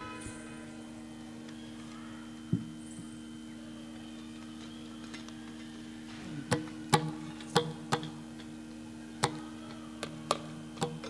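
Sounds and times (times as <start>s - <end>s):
sharp percussion strokes: 0.0s - 1.3s
steady drone: 0.0s - 11.0s.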